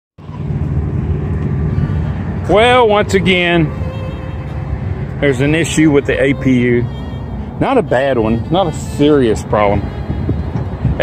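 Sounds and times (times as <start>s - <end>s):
diesel engine idling: 0.2s - 11.0s.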